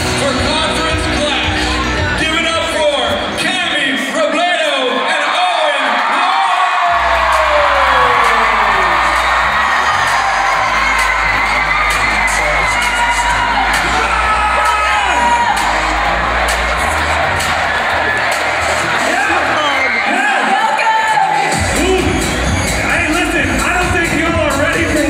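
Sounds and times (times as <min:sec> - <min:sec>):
amplified concert music: 0:00.0 - 0:25.0
crowd cheering and whooping: 0:04.7 - 0:25.0.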